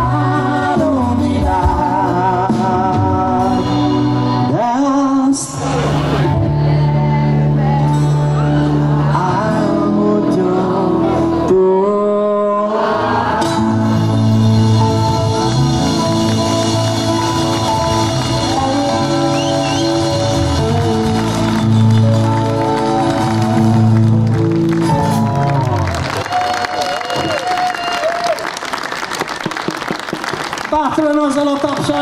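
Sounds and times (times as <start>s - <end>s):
live band music: 0.0s - 27.6s
audience applause: 16.3s - 32.0s.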